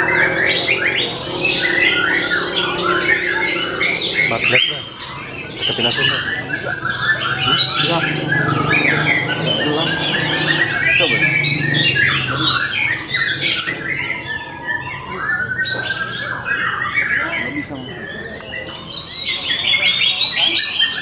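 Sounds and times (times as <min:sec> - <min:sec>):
songbirds singing and chirping: 0:00.0 - 0:21.0.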